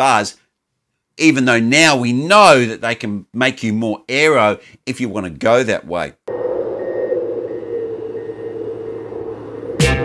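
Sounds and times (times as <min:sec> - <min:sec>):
steady droning tone: 0:06.3 - 0:10.0.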